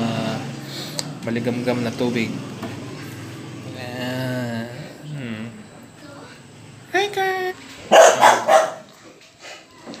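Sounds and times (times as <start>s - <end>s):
puppy barking: 7.9s - 9.0s.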